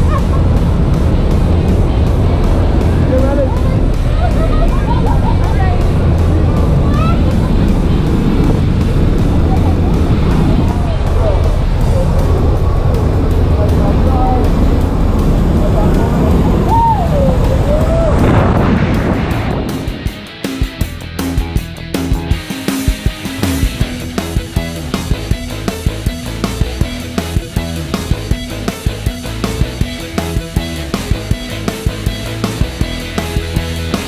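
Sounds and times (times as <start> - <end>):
plane engines and propeller drone: 0.0 - 20.6
people shouting: 16.6 - 18.3.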